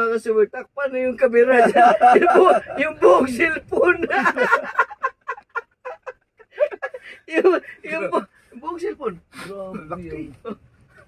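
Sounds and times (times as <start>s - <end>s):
men laughing heartily: 1.5s - 8.2s.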